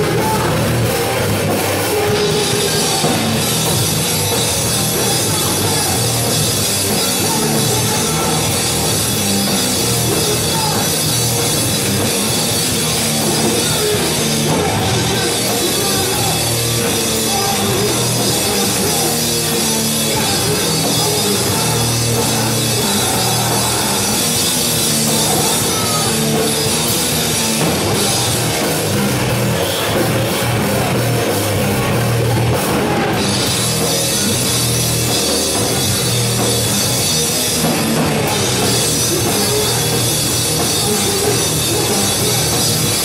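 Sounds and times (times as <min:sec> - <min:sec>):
bass guitar: 0:00.0 - 0:43.0
drum kit with cymbals: 0:00.0 - 0:43.0
electric guitar: 0:00.0 - 0:43.0
rock band playing loud: 0:00.0 - 0:43.0.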